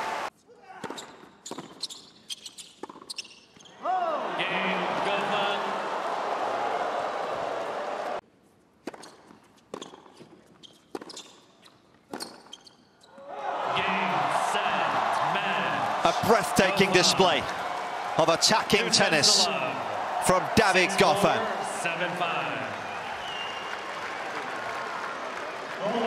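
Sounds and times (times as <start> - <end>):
crowd cheering and applauding: 0.0 - 0.3, 4.2 - 8.2, 13.3 - 26.0.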